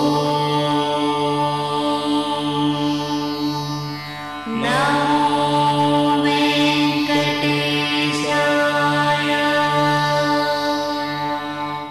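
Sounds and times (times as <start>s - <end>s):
devotional chant in held notes: 0.0s - 11.9s.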